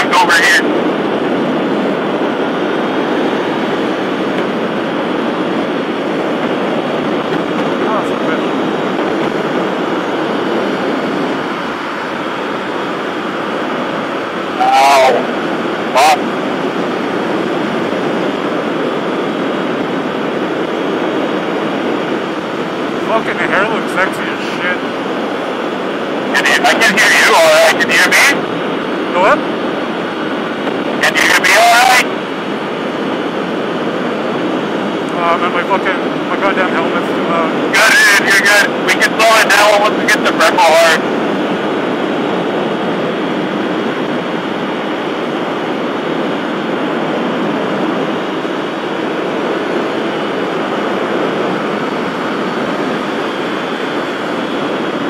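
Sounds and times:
wind and road noise: 0:00.0 - 0:55.0.

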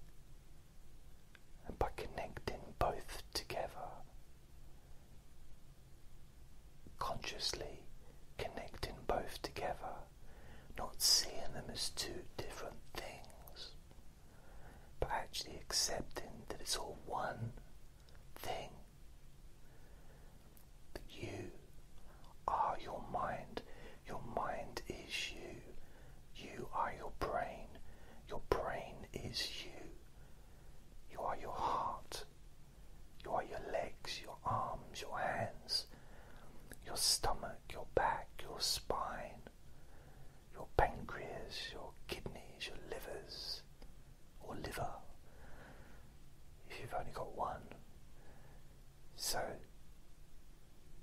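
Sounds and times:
man whispering: 0:01.6 - 0:04.2, 0:06.9 - 0:13.9, 0:14.5 - 0:18.9, 0:20.6 - 0:30.2, 0:31.0 - 0:32.3, 0:33.2 - 0:39.6, 0:40.4 - 0:43.7, 0:44.3 - 0:45.6, 0:46.6 - 0:48.5, 0:49.1 - 0:49.8.

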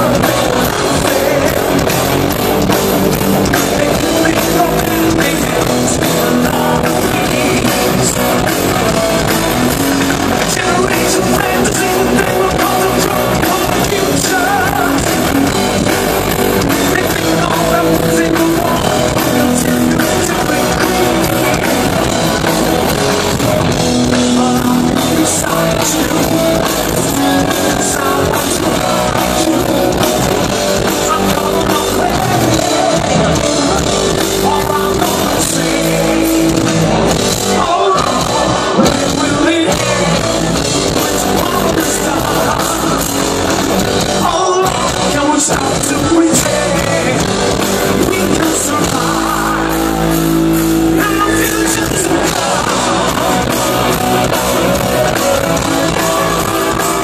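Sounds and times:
drums: 0:00.0 - 0:57.0
electric guitars: 0:00.0 - 0:57.0
man singing: 0:00.0 - 0:57.0.

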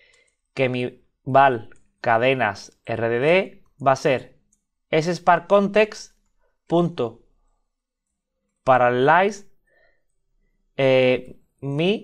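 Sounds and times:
man speaking: 0:00.5 - 0:07.3, 0:08.6 - 0:09.6, 0:10.8 - 0:12.0.

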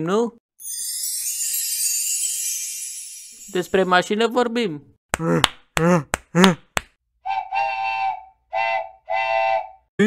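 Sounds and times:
whistle-like tone blasts: 0:07.2 - 0:09.9.

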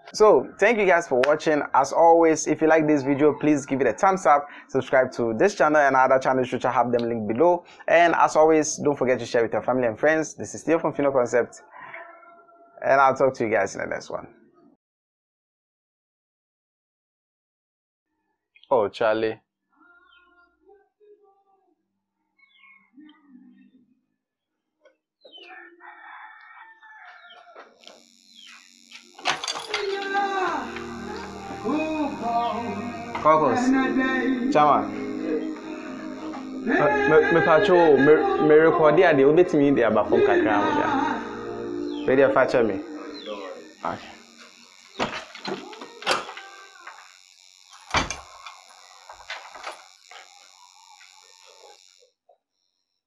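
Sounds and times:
music with a voice: 0:29.8 - 0:44.2.

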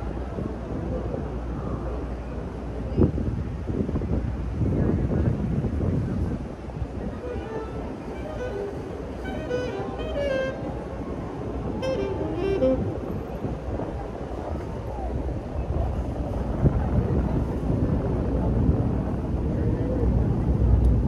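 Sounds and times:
low traffic rumble: 0:00.0 - 0:21.0
many people talking: 0:00.0 - 0:21.0
pitched musical notes: 0:07.2 - 0:10.6, 0:11.8 - 0:13.0.

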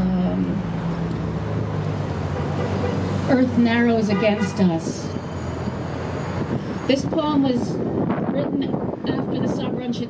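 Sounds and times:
woman speaking: 0:00.0 - 0:00.6, 0:03.3 - 0:05.2, 0:06.9 - 0:10.0
city background rumble: 0:00.0 - 0:10.0.

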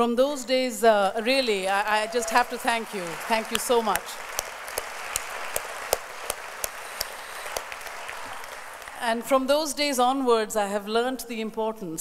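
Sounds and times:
audience applauding: 0:01.2 - 0:09.2
close single claps: 0:03.5 - 0:08.9.

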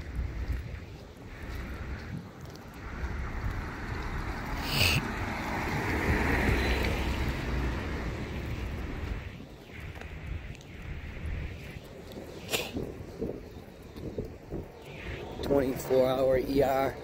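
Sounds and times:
car passing on wet pavement: 0:00.0 - 0:12.7
wind rumble on microphone: 0:00.0 - 0:17.0.

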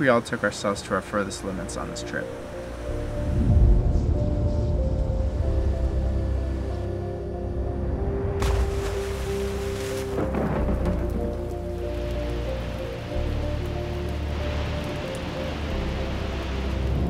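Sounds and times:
music with held chords: 0:01.1 - 0:17.0
water splash: 0:08.4 - 0:17.0
waterfall rushing: 0:08.4 - 0:17.0.

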